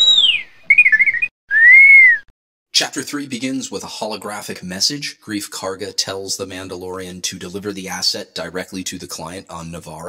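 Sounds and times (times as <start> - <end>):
high whistle-like chirps: 0.0 - 2.3.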